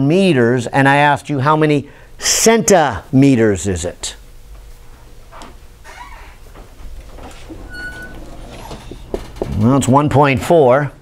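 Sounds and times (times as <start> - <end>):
low room hum: 0.0 - 11.0
brief high squeak: 7.6 - 9.0.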